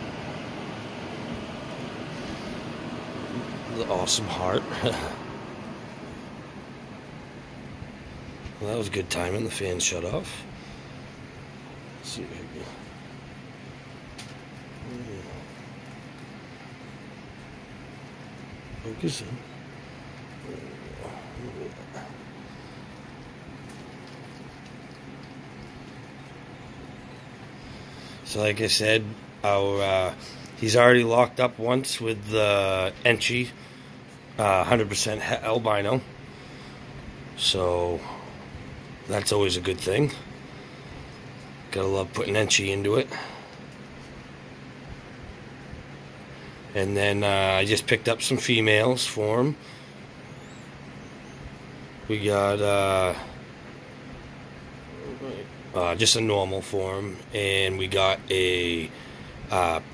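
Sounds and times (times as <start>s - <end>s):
low hum and hiss: 0.0s - 59.9s.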